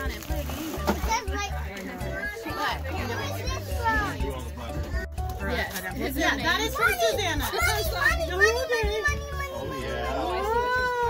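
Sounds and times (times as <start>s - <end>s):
background music with bass line: 0.0s - 11.0s
children chattering excitedly: 0.0s - 11.0s.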